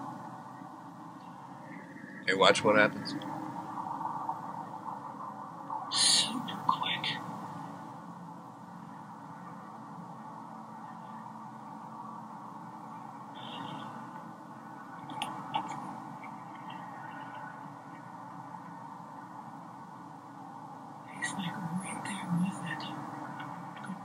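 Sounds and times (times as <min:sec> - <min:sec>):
low steady background hiss: 0:00.0 - 0:24.0.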